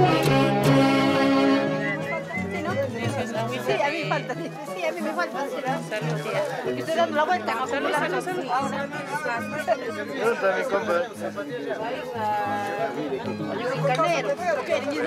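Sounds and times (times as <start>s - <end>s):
music playing: 0.0s - 11.5s
overlapping chatter: 0.0s - 15.0s.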